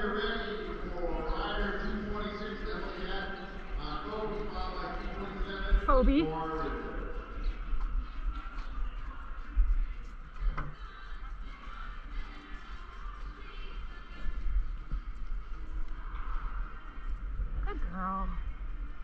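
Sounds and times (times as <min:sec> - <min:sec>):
distant voices: 0:00.0 - 0:18.2
music: 0:00.0 - 0:19.0.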